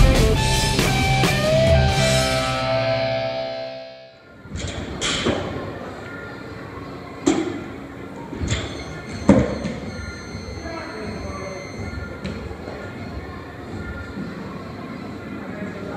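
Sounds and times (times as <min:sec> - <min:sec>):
rock music: 0:00.0 - 0:04.2.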